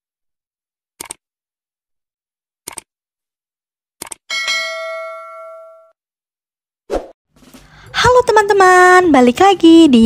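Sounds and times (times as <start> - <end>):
bell chime: 4.3 - 6.0.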